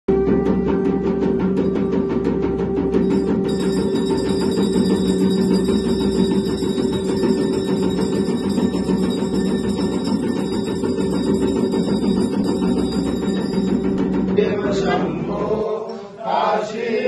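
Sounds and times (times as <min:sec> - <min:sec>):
conch shell blown: 0:00.1 - 0:13.9.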